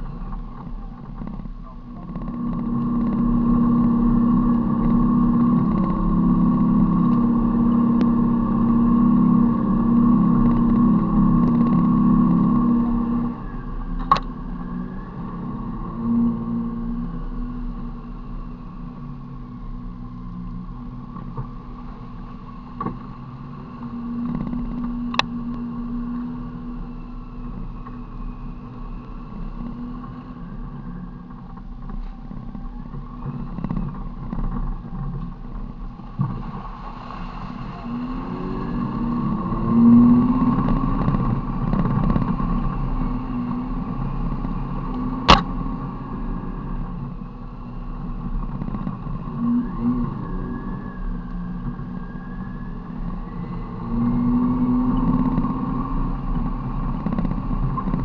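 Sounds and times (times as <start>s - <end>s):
vehicle engine running under load: 0.0s - 58.0s.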